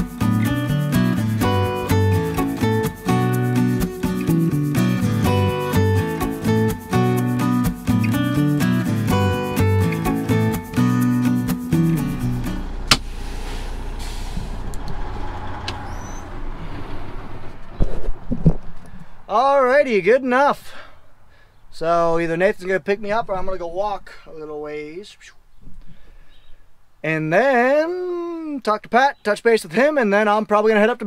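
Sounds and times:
truck engine rumble: 0.0 - 6.6, 8.8 - 19.7
guitar music: 0.0 - 16.2
parking brake click: 12.8 - 15.0
air hiss: 12.9 - 14.7.

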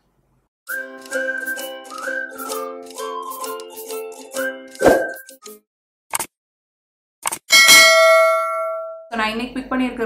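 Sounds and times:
bell ding: 7.5 - 9.1.

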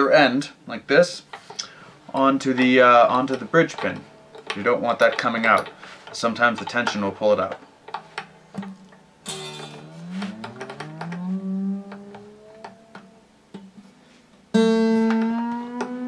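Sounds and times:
guitar string plucked rising pitch: 8.6 - 13.8, 14.5 - 16.0.

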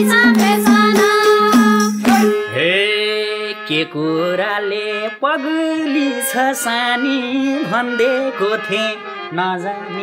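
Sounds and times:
man singing folk song: 2.5 - 10.0.

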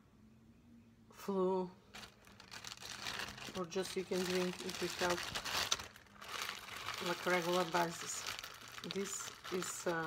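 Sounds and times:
plastic bag crinkling: 1.9 - 10.0.

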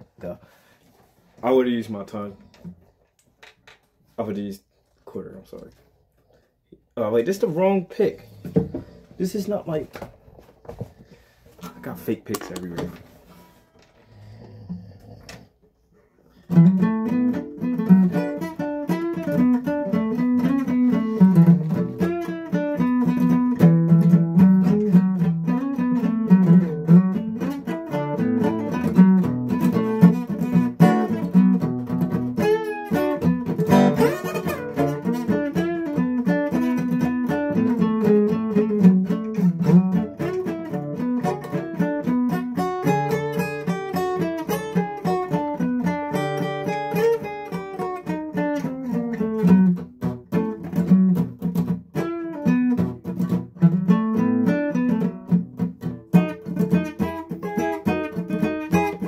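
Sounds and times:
acoustic guitar playing: 7.0 - 15.2, 16.3 - 59.0.

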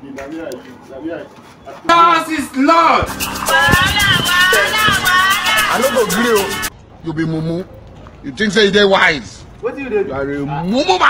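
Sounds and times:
song with steady beat: 3.0 - 6.7
person singing: 3.1 - 6.7.

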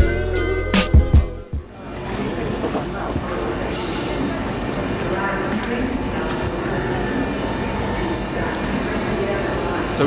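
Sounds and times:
railway station platform noise: 1.6 - 10.0.

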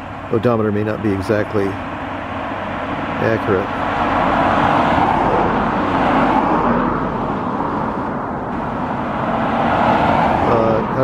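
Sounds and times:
cars passing on pavement: 0.0 - 11.0.

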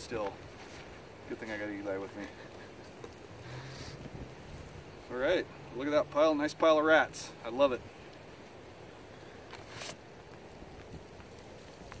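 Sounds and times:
wind rumble on microphone: 3.4 - 5.7
brief rustle: 9.5 - 10.0.

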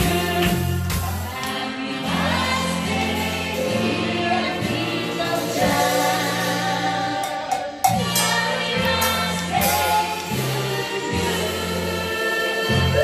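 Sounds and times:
backing music with bass line: 0.0 - 13.0
group singing through microphones: 0.0 - 13.0.

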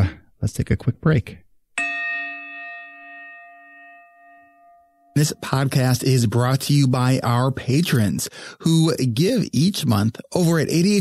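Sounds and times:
bell-like chime ringing: 1.8 - 6.0.

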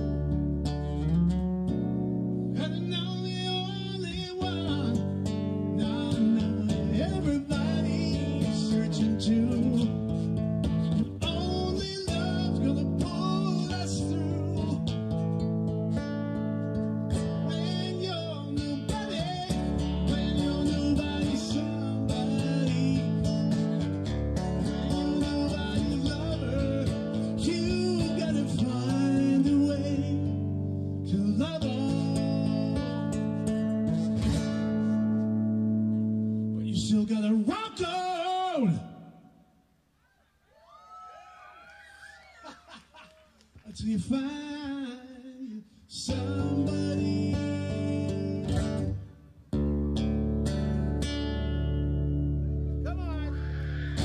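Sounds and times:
amplified acoustic guitar: 0.0 - 39.6, 43.2 - 54.0.

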